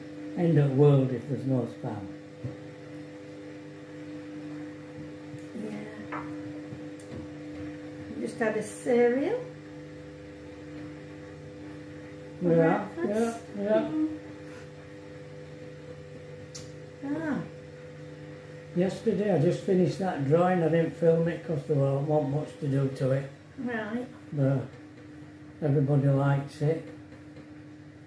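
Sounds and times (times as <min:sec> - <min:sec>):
appliance electrical hum: 0:00.0 - 0:28.0.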